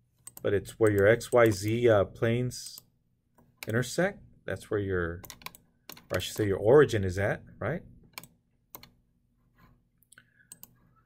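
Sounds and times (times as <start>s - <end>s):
computer mouse clicks: 8.1s - 9.0s, 10.0s - 10.8s.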